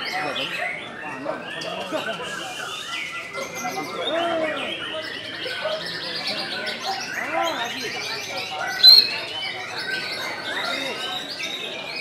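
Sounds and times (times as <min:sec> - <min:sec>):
caged songbirds singing: 0:00.0 - 0:12.0.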